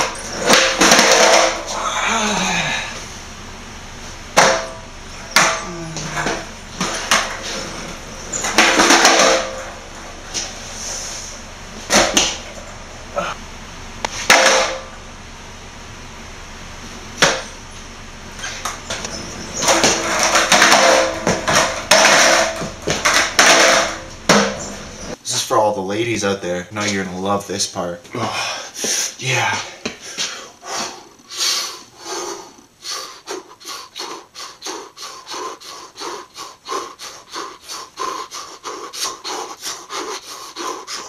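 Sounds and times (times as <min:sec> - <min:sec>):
skateboard wheels rolling on concrete: 0:00.0 - 0:01.7, 0:05.3 - 0:12.8, 0:18.3 - 0:25.2
skateboard deck clacking on concrete: 0:00.4 - 0:01.6, 0:08.4 - 0:09.7, 0:18.9 - 0:24.6.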